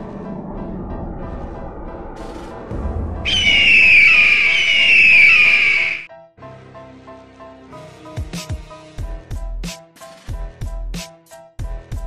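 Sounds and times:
hawk screeching: 3.3s - 6.1s.

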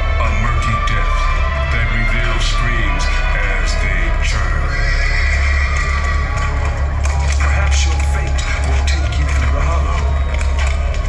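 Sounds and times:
crowd cheering: 0.0s - 11.0s
loud amplified music with heavy bass: 0.0s - 11.0s.

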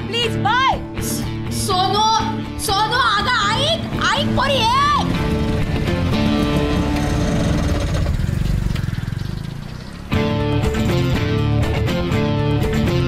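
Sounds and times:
music track with guitar: 0.0s - 8.2s, 10.0s - 13.0s
film background music: 0.0s - 8.3s, 10.1s - 13.0s.

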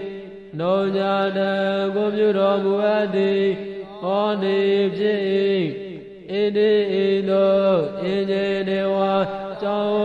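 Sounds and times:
person chanting in monotone: 0.0s - 10.0s.

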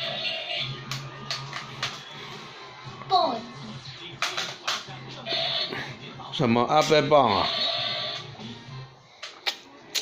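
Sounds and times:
cartoon music on television: 0.0s - 10.0s.

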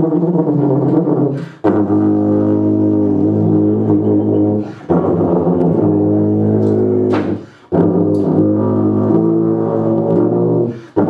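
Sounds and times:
low held horn notes: 0.0s - 11.0s.

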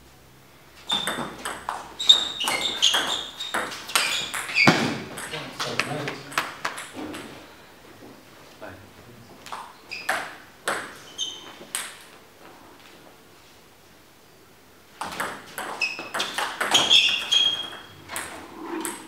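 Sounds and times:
shoe squeaks on floor: 0.8s - 5.1s, 9.8s - 10.4s, 11.0s - 11.7s, 15.7s - 18.1s
ball bouncing: 0.9s - 7.3s, 10.1s - 11.0s, 15.0s - 19.0s.

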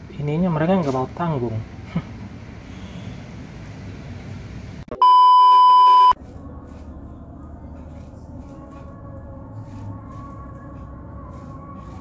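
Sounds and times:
test-tone beep: 4.9s - 6.2s.

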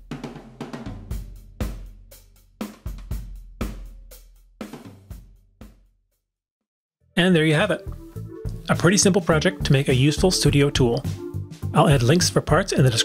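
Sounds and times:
drum kit music: 0.0s - 5.9s, 7.2s - 13.0s.

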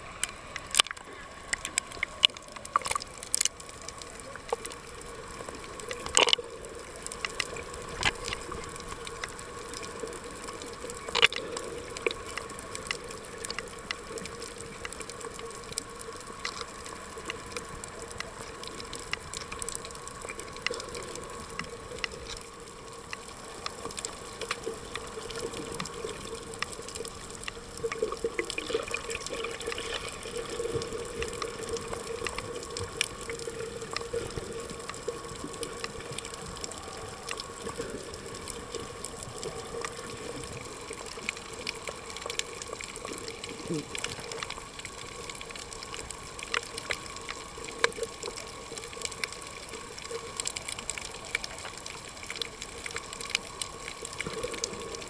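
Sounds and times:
sharp clicks and crackles: 0.0s - 55.0s
underwater water wash: 0.0s - 55.0s.

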